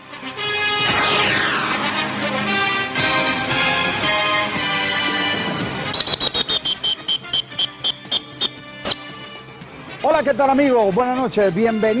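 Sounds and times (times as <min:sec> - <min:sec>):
theme music: 0:00.0 - 0:11.8.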